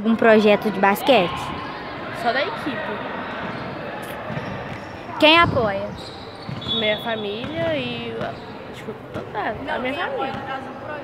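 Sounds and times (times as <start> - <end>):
faint echoing voices: 0.0 - 11.0
basketball bouncing: 4.2 - 8.4.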